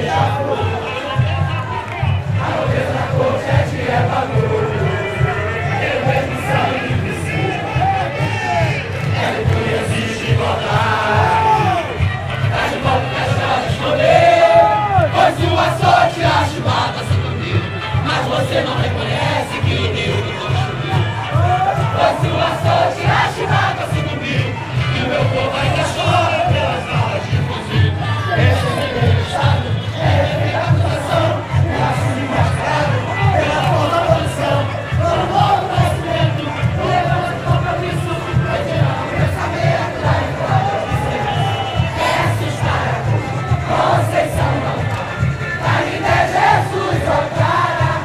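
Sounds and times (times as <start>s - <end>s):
bass drums beating: 0.0s - 48.0s
crowd singing: 0.0s - 48.0s
samba percussion: 0.0s - 48.0s.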